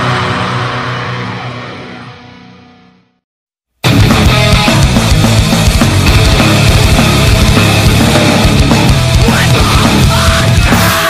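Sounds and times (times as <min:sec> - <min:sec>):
distorted heavy metal chord ringing: 0:00.0 - 0:03.2, 0:03.8 - 0:11.0.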